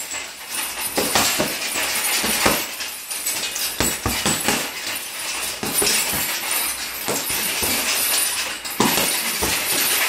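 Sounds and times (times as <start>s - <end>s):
punches thudding on heavy bag: 0.9s - 10.0s.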